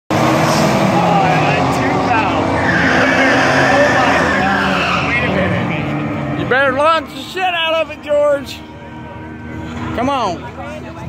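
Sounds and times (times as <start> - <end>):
loud racing car engines: 0.1 - 11.0
tire squeal: 0.3 - 6.2.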